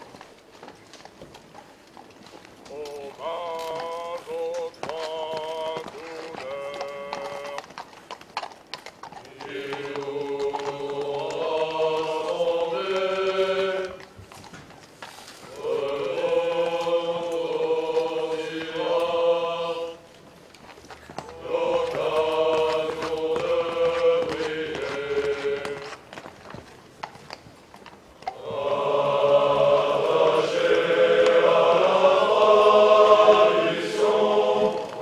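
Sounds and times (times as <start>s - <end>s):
male choir singing: 2.7s - 7.6s, 9.3s - 14.0s, 15.5s - 20.1s, 21.3s - 25.8s, 28.4s - 35.0s.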